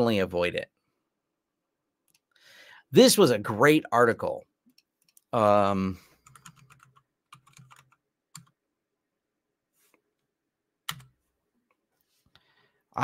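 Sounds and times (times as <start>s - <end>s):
faint typing on keyboard: 6.0s - 8.6s, 10.9s - 11.8s.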